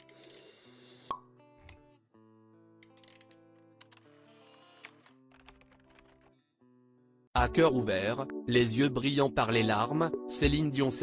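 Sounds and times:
background music with held notes: 1.1s - 11.0s.

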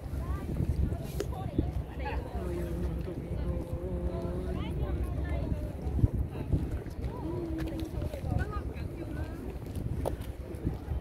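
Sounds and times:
people talking: 0.0s - 11.0s
wind buffeting microphone: 0.0s - 11.0s.

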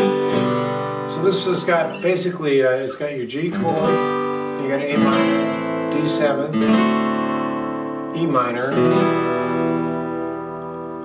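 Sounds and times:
acoustic guitar chord ringing: 0.0s - 11.0s.

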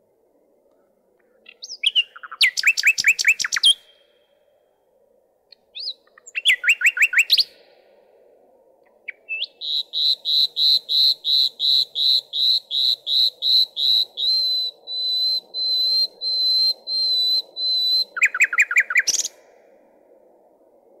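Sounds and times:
nightingale singing: 0.6s - 4.3s, 5.5s - 7.8s, 8.8s - 19.6s.

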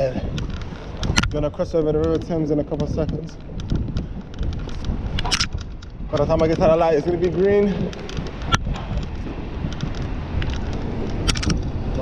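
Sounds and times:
low road rumble: 0.0s - 12.0s
wind buffeting microphone: 0.0s - 12.0s
small clicks: 0.2s - 12.0s.

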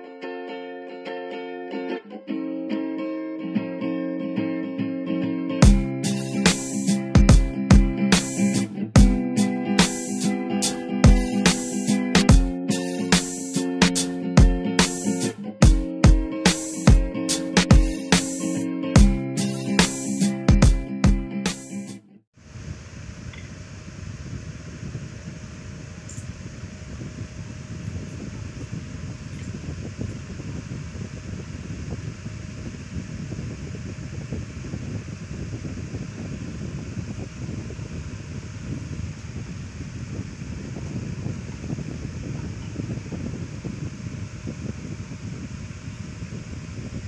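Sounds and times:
rushing air: 22.4s - 47.0s
wind buffeting microphone: 22.4s - 47.0s.

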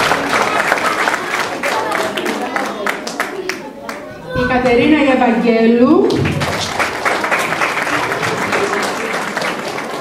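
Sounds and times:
audience applauding: 0.0s - 4.1s, 6.1s - 10.0s.

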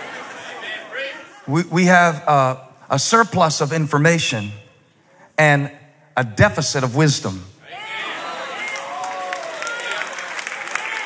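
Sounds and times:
congregation applauding: 8.1s - 11.0s.

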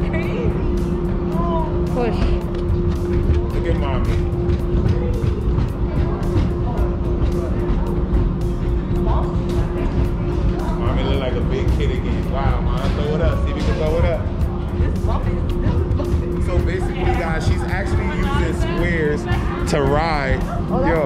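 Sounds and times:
tricycles rumbling over ridged track: 0.0s - 21.0s
voices: 0.0s - 21.0s.

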